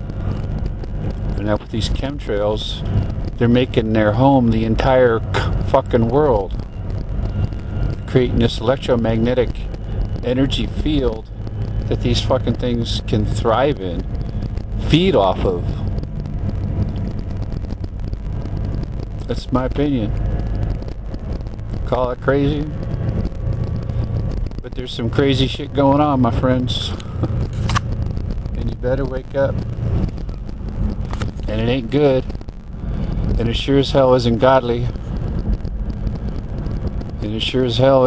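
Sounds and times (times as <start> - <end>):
car engine and road noise: 0.0 - 38.0
traffic rumble: 0.0 - 38.0
wind buffeting microphone: 0.0 - 38.0.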